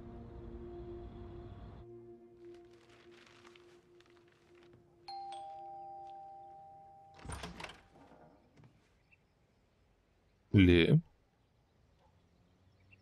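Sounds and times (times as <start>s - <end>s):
ding-dong doorbell chime: 5.1s - 7.5s.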